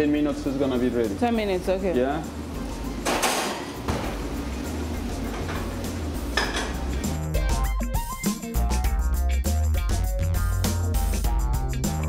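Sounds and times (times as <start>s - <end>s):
metal oven door and pan clatter: 3.0s - 4.3s, 5.2s - 6.9s
background music with bass line: 4.2s - 12.0s.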